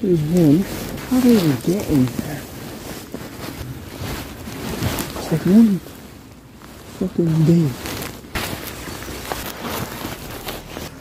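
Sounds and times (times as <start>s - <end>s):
fabric rustling on microphone: 0.0s - 11.0s.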